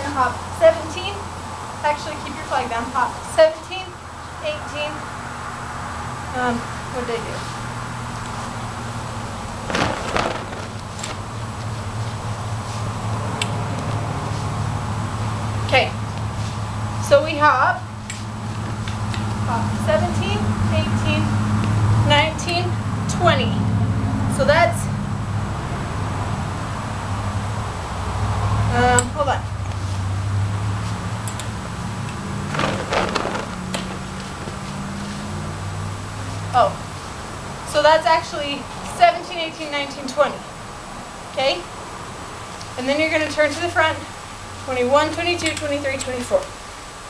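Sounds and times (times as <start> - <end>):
flag fabric whooshing: 8.4 - 13.0, 31.9 - 35.6.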